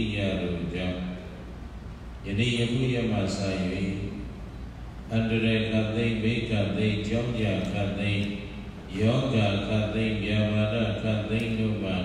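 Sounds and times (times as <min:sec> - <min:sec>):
man chanting: 0:05.1 - 0:12.0.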